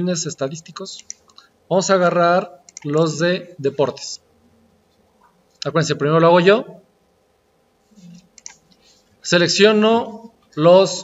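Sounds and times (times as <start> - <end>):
computer mouse clicks: 1.0 - 1.5, 2.7 - 3.0, 8.3 - 8.8.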